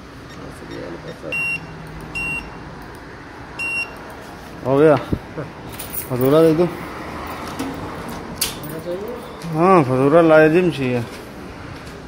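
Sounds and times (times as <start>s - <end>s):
payment terminal beeping: 0.2s - 2.6s, 3.6s - 4.1s.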